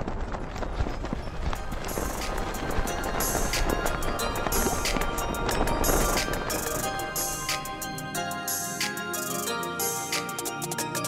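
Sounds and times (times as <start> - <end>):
music with percussive beat: 1.9 - 11.0.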